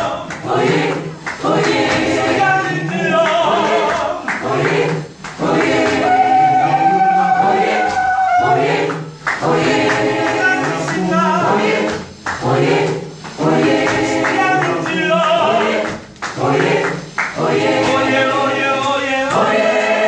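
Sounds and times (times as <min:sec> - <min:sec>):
gospel choir singing: 0:00.0 - 0:20.0.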